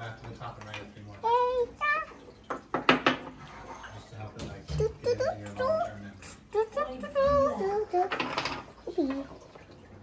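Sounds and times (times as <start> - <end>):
wooden figurines knocking on wood: 2.5 - 3.4.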